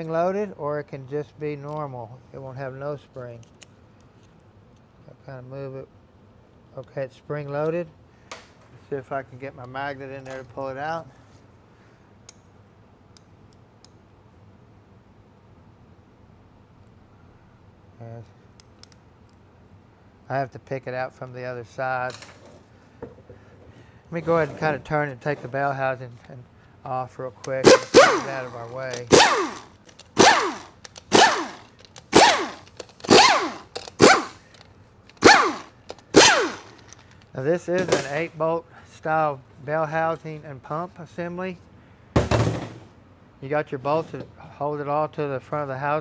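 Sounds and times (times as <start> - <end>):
pneumatic impact wrench bursts: 27.6 - 37.1.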